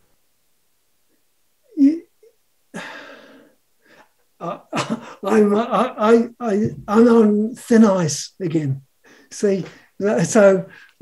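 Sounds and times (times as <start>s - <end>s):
man speaking: 1.8s - 2.1s, 4.4s - 10.9s
man exhaling breathily: 2.8s - 4.1s.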